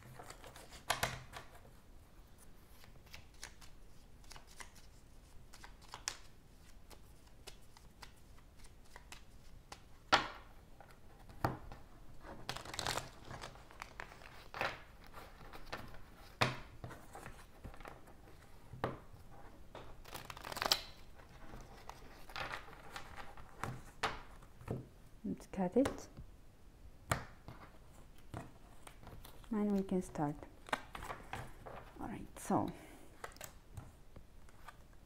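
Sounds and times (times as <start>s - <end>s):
cards being shuffled: 2.4s - 10.0s, 10.9s - 19.0s, 19.7s - 24.5s, 27.1s - 32.0s, 33.2s - 35.0s.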